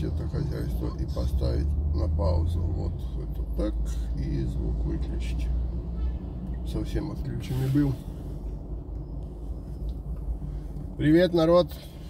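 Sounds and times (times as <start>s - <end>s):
low vehicle rumble: 0.0s - 12.0s.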